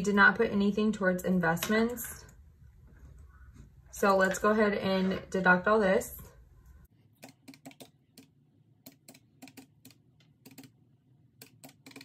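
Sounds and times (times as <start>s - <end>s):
calculator keys clicking: 11.4s - 12.0s.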